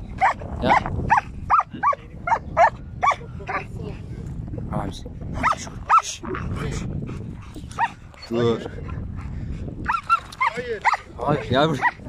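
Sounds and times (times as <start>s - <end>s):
dog barking: 0.2s - 3.7s, 5.4s - 6.1s, 7.8s - 8.0s, 9.9s - 12.0s.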